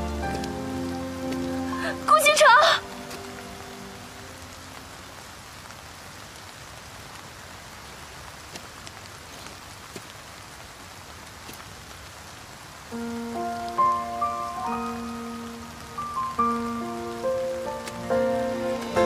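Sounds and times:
soft background music: 0:00.0 - 0:05.0, 0:13.0 - 0:19.0
rain falling on wet pavement: 0:00.0 - 0:19.0.

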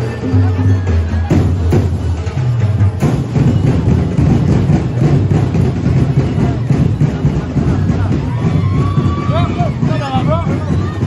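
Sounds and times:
parade music with drums: 0:00.0 - 0:11.0.

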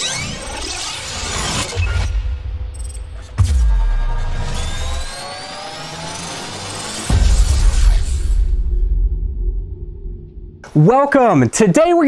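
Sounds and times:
rising tones: 0:00.0 - 0:10.6
deep boom with falling sweep: 0:07.0 - 0:10.6.

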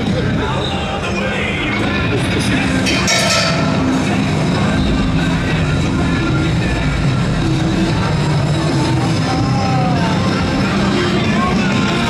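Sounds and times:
loud music: 0:00.0 - 0:12.0.

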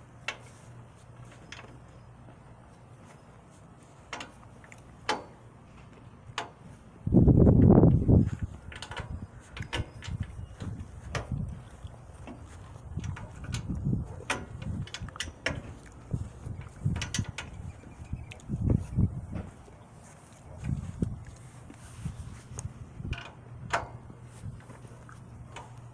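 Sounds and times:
metallic clicks and knocks: 0:04.1 - 0:06.6, 0:08.4 - 0:18.6, 0:22.5 - 0:24.8.

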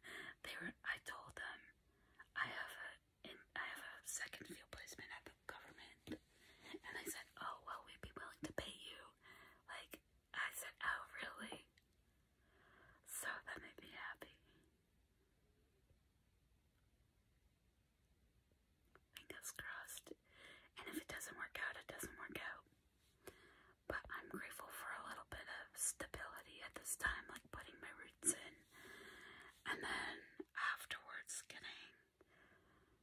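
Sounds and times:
woman whispering: 0:00.0 - 0:11.8, 0:13.0 - 0:14.6, 0:19.1 - 0:22.7, 0:23.9 - 0:28.7, 0:29.4 - 0:32.1.

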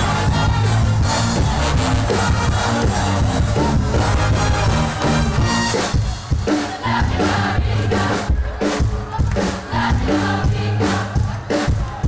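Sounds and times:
brass band playing: 0:00.0 - 0:08.8
steady drumbeat: 0:00.0 - 0:12.0.

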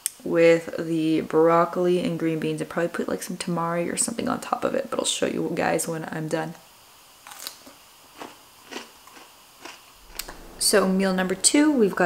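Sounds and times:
crunching bites of pickle: 0:07.2 - 0:10.4.

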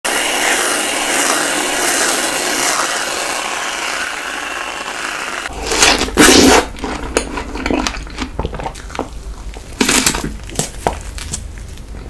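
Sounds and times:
aerosol whipped cream spraying: 0:00.0 - 0:05.5
bite into a strawberry: 0:05.5 - 0:08.9.

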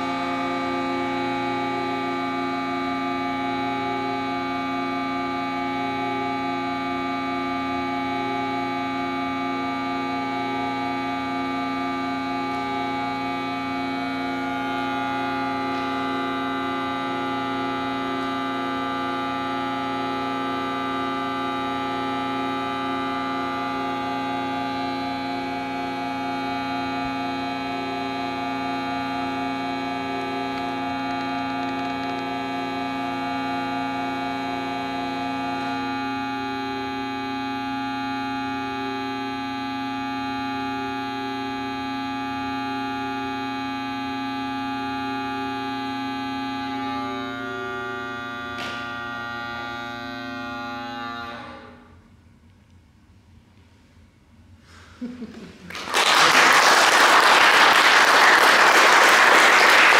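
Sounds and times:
organ drone chord: 0:00.0 - 0:59.9.

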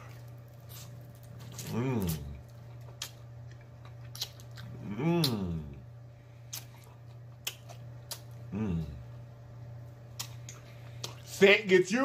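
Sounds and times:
low electrical hum: 0:00.0 - 0:12.0
person humming: 0:01.7 - 0:02.3, 0:04.8 - 0:05.9, 0:08.5 - 0:09.1
lip smacks and mouth clicks: 0:02.8 - 0:05.4, 0:06.5 - 0:08.4, 0:10.1 - 0:11.3.

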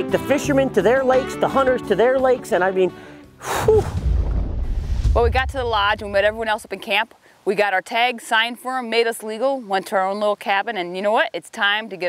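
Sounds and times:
person exhaling whew: 0:03.4 - 0:04.0
steady low rumble: 0:03.8 - 0:06.7.

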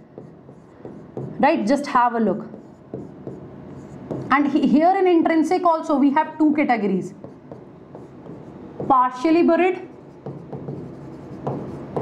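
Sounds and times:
pen scratching on board: 0:02.4 - 0:04.6, 0:07.2 - 0:09.0, 0:10.0 - 0:12.0.

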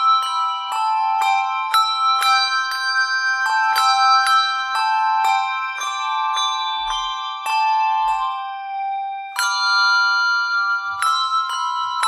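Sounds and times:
handbells ringing a slow tune: 0:00.0 - 0:12.0.

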